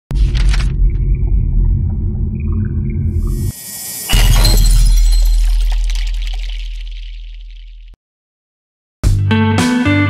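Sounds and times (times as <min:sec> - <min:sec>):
glassy shattering sparkle: 0:03.5 - 0:07.8.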